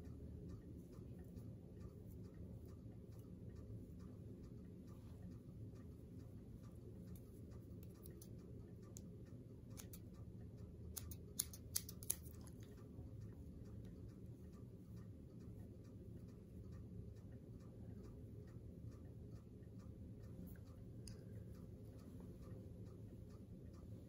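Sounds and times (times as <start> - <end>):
clock ticking: 0.0 - 24.0
low room hum: 0.0 - 24.0
scissors snipping: 7.8 - 8.3, 9.7 - 10.0, 10.9 - 12.7.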